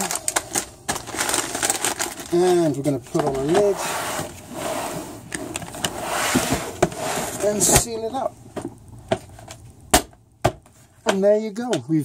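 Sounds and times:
plastic bucket handling rustle: 0.0s - 9.6s.

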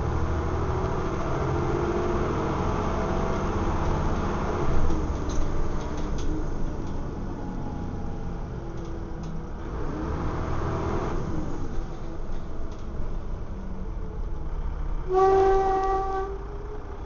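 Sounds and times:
bus diesel engine: 0.0s - 17.0s.

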